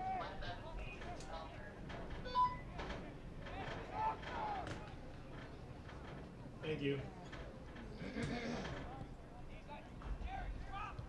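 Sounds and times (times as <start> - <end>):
distant people shouting: 3.5 - 4.9.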